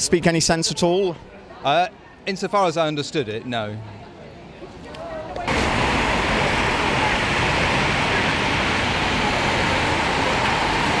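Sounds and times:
rain falling on wet street: 5.5 - 11.0.

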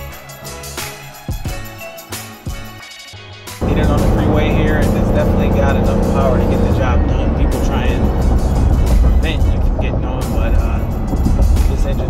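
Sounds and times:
background music: 0.0 - 12.0
truck cab road and engine rumble: 3.6 - 12.0.

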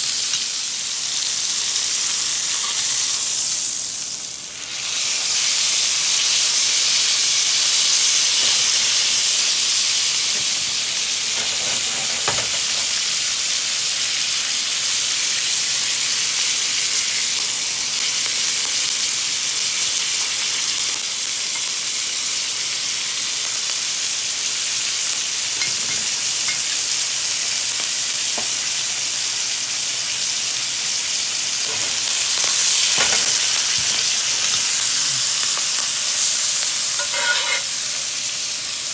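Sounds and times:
steak sizzling in a skillet: 0.0 - 38.9.

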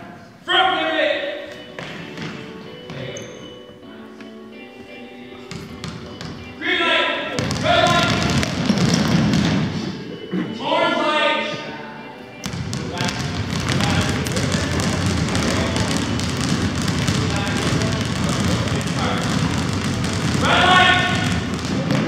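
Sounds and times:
basketballs bouncing on wooden floor: 1.7 - 3.4, 5.5 - 6.5, 7.3 - 9.9, 12.4 - 22.0.

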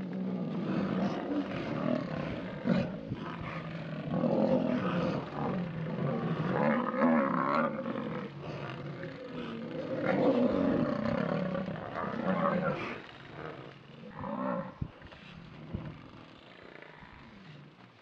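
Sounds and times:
lionesses growling: 0.0 - 18.0.

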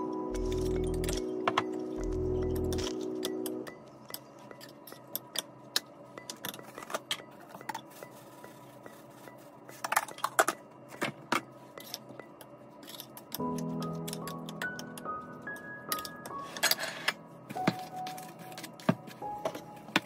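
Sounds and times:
background music: 0.0 - 5.4, 13.4 - 20.0.

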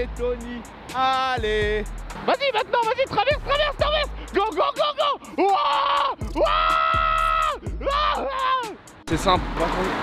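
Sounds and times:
background music with beat: 0.0 - 10.0
man shouting: 1.0 - 8.8.

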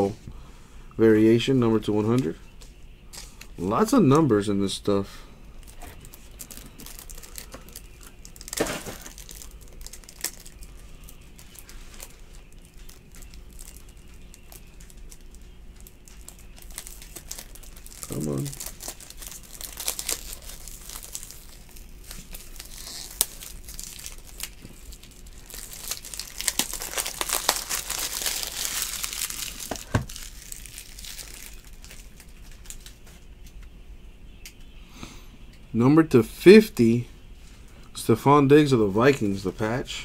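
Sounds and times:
foil wrappers crinkling and tearing: 5.6 - 33.2.

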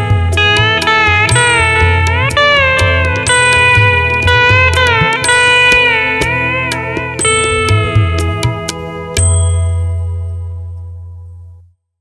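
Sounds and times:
guitar chord ringing: 0.0 - 11.7
deep bass note: 0.0 - 11.8.

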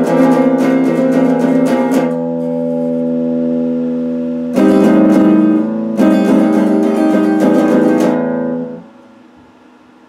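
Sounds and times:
electric guitar fast strumming: 0.0 - 8.9
electric guitar chord ringing: 0.0 - 9.4.

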